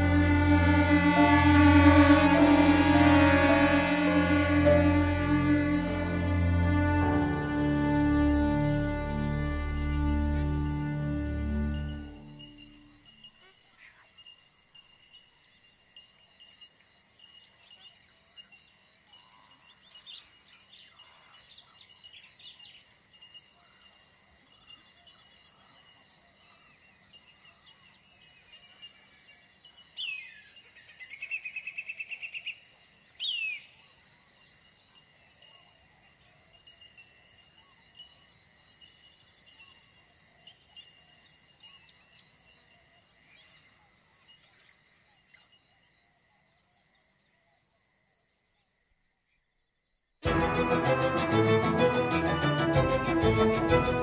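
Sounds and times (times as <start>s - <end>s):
insects chorus: 0.0s - 50.0s.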